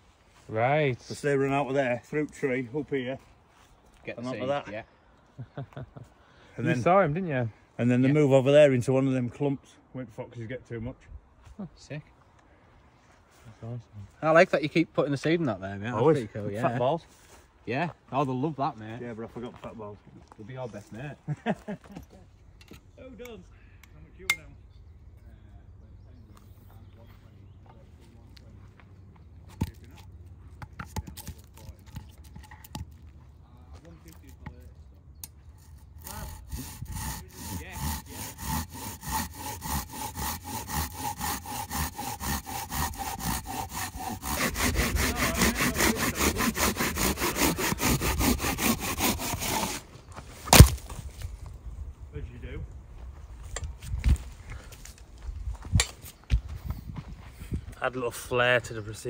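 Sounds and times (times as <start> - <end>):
hand saw cutting a log: 30.7 - 32.8, 35.5 - 49.9, 50.5 - 50.8.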